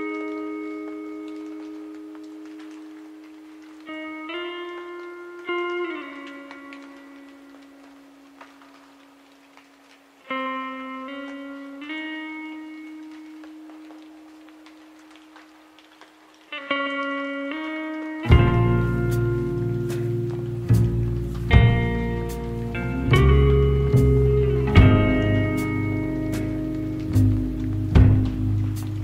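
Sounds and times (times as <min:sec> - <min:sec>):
faint ticks and crackles: 0:00.0 - 0:29.0
guitar note ringing: 0:17.1 - 0:28.2.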